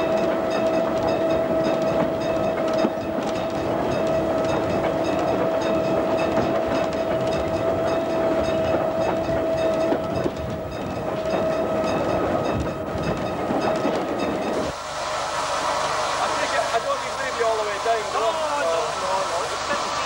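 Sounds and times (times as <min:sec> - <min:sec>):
train wheels clacking over rail joints: 0:00.0 - 0:14.7
steady whine: 0:13.8 - 0:20.0.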